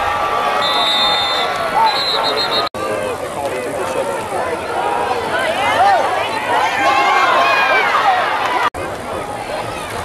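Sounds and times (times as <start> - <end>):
crowd yelling and cheering: 0.0 - 10.0.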